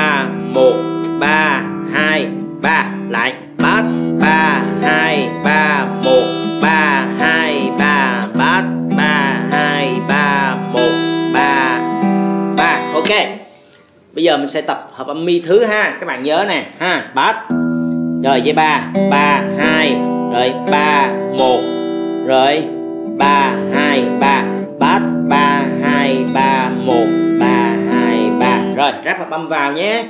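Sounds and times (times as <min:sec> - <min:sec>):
fingerpicked acoustic guitar: 0:00.0 - 0:13.8, 0:17.4 - 0:29.0.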